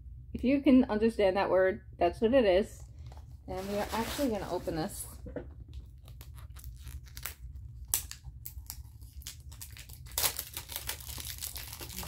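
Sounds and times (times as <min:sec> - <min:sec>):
wrapping crinkling: 0:02.9 - 0:05.2, 0:05.8 - 0:12.0
wrapping paper tearing: 0:06.0 - 0:12.0.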